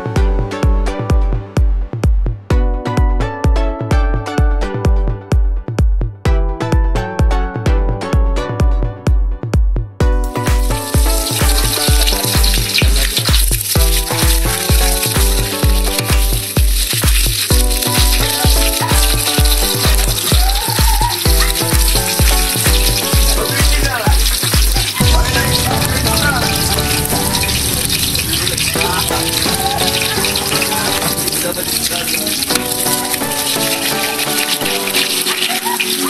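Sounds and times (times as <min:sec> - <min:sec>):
electronic dance music: 0:00.0 - 0:36.0
garlic and onion sizzling in wok: 0:10.2 - 0:36.0.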